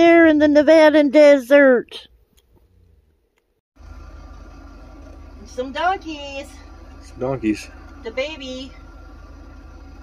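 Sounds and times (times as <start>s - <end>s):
vehicle engine idling: 3.8s - 10.0s.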